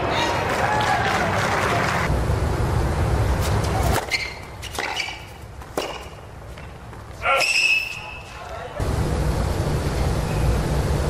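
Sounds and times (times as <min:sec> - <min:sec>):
crowd and court noise: 0:00.0 - 0:02.1, 0:03.3 - 0:08.9
racquet hitting tennis ball: 0:03.6 - 0:07.0.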